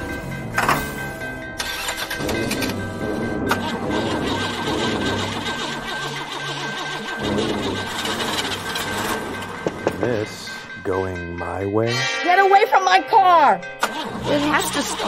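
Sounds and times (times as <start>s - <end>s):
car engine cranking: 0.0s - 10.8s, 13.6s - 15.0s
tense dramatic music: 0.0s - 15.0s.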